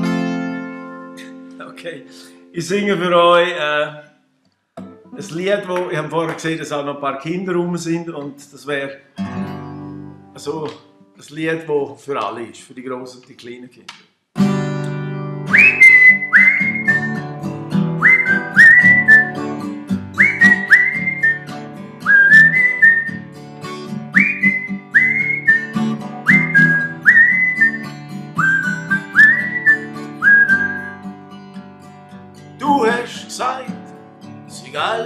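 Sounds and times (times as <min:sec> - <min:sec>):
acoustic guitar chords: 0:00.0 - 0:04.0, 0:04.8 - 0:06.6, 0:09.0 - 0:11.3, 0:14.4 - 0:35.0
man whistling a melody: 0:15.5 - 0:17.3, 0:18.0 - 0:19.5, 0:20.2 - 0:23.2, 0:24.1 - 0:31.1.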